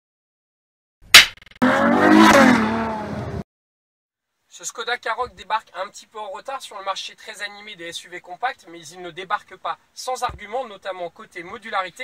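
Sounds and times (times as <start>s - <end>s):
sharp hit: 1.1s - 1.8s
car engine revving: 1.6s - 3.4s.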